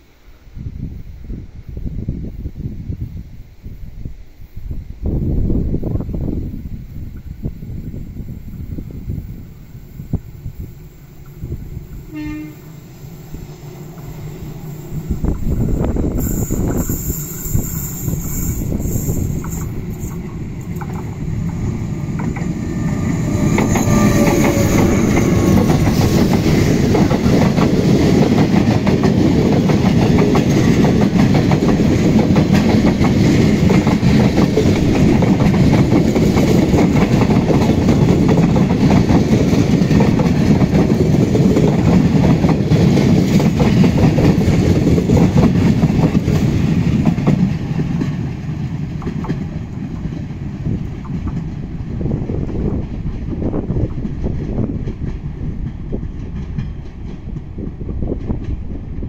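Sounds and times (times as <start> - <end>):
train passing on rails: 0.0 - 59.0
wheels clicking over track: 17.5 - 51.7.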